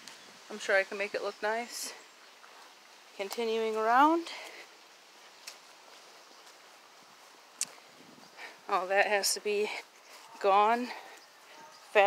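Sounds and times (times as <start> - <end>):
faint outdoor hiss: 0.0 - 12.0.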